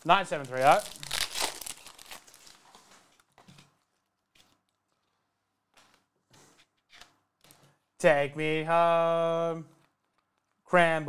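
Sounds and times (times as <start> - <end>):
cards rustling: 0.1 - 5.2
foil wrapper tearing and crinkling: 0.4 - 3.3.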